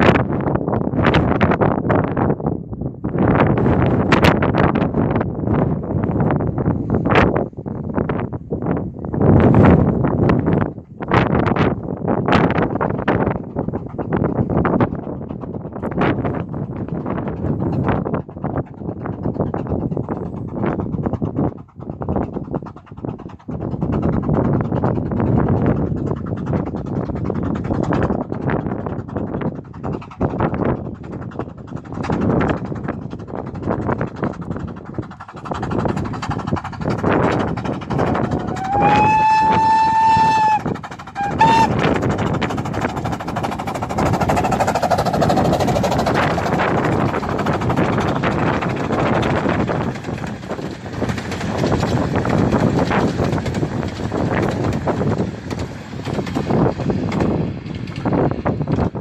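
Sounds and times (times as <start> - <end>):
wind buffeting microphone: 0.0 - 59.0
train running past: 36.4 - 58.6
steam whistle blasts: 38.4 - 41.9.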